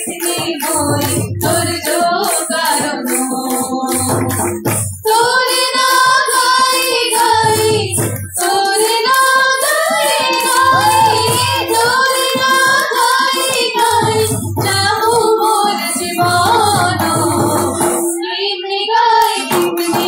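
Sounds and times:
sharp percussion strikes: 0.0s - 18.2s, 19.2s - 20.0s
high voice singing: 5.1s - 20.0s
low drum pulses: 10.6s - 12.1s.

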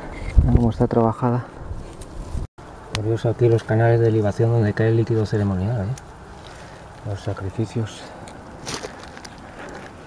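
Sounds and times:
undergrowth crackling: 5.8s - 10.0s
footsteps over rock and scrub: 8.3s - 10.0s.

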